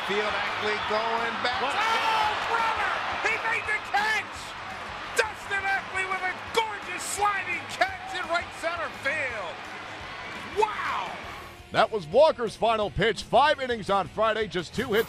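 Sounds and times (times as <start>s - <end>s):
man talking excitedly: 0.0s - 4.5s, 5.1s - 9.5s
ballpark crowd noise: 0.0s - 11.6s.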